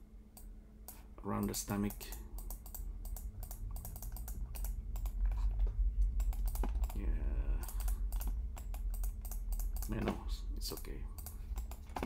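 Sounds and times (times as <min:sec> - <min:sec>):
low steady hum: 0:00.0 - 0:12.0
keyboard and mouse clicking: 0:02.4 - 0:07.0, 0:07.6 - 0:12.0.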